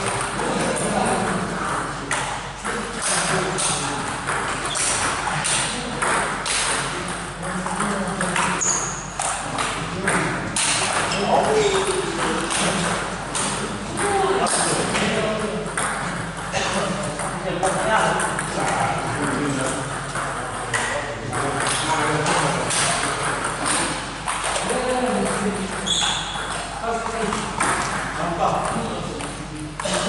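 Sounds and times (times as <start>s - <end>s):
ping pong ball clicking off paddles: 0.0s - 30.0s.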